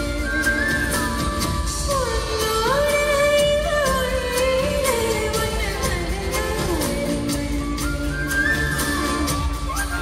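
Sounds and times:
live band over loudspeakers: 0.0 - 10.0.

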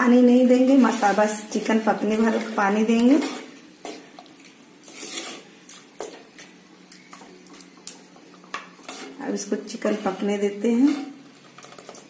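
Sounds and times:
wooden spatula scraping clay pot: 0.6 - 4.1, 4.8 - 6.2, 8.8 - 12.0.

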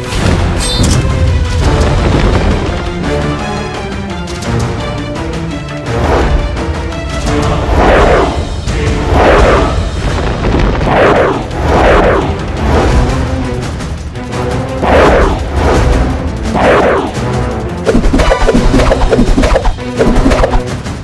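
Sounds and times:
dramatic soundtrack music: 0.0 - 21.0.

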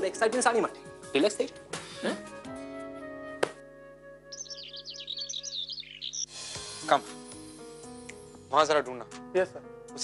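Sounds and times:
birds chirping: 4.3 - 6.5.

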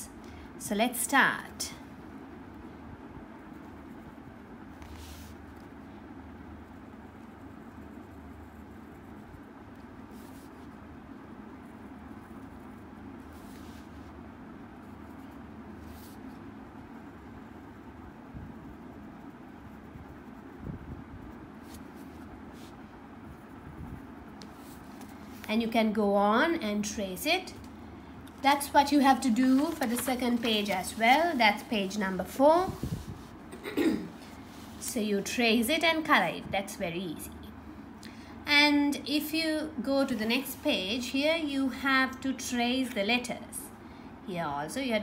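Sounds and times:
low background hum: 0.0 - 45.0
pencil scratching on paper: 6.6 - 10.8, 28.5 - 33.3.

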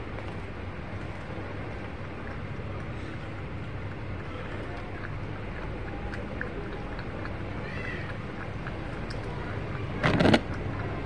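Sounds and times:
cat lapping milk: 0.0 - 11.0.

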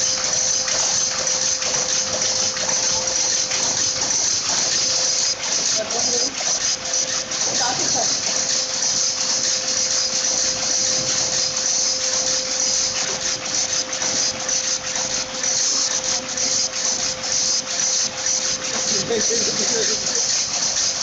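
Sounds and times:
constant machine hum: 0.0 - 21.0.

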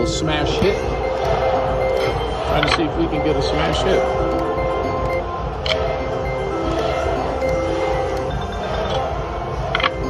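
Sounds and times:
slot machine electronic tune: 0.0 - 10.0
bright chime: 0.2 - 9.2.

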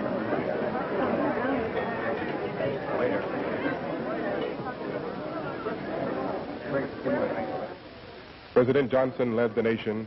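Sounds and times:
babble of many voices: 0.0 - 10.0.

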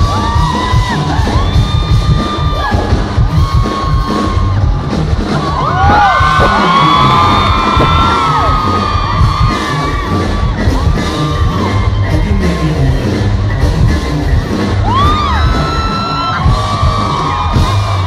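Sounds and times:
fans screaming and whooping: 0.0 - 18.0
live r and b music with heavy bass: 0.0 - 18.0.

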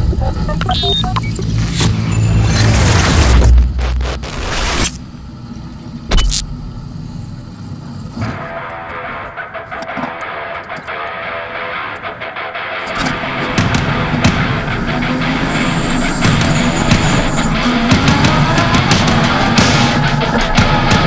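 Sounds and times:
music: 0.0 - 3.9, 8.2 - 21.0
race car engine rumble: 13.0 - 21.0.

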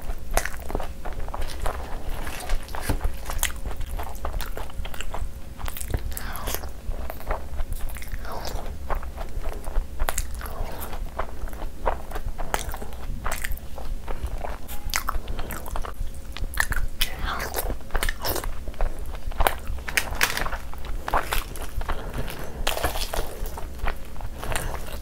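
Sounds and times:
person chewing food: 0.0 - 25.0.

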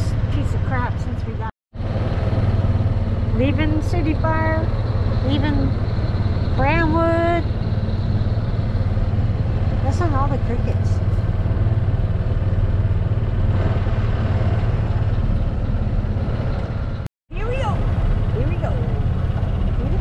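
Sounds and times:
golf cart rumbling: 0.0 - 20.0.

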